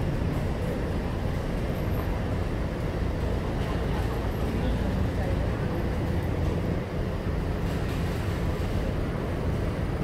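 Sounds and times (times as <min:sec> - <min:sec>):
low rumble of street traffic: 0:00.0 - 0:10.0.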